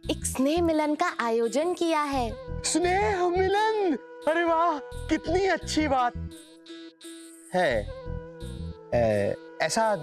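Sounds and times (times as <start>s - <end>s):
person speaking a word: 9.0s - 9.4s.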